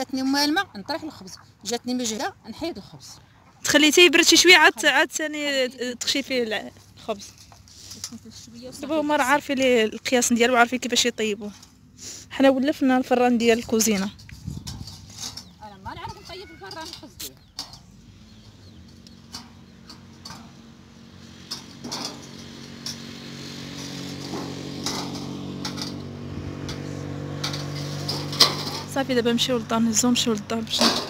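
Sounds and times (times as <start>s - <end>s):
engine running steadily: 16.9s - 31.0s.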